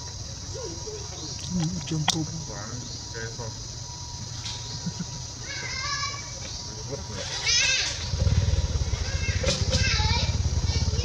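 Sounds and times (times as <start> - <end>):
macaques calling: 0.0 - 11.0.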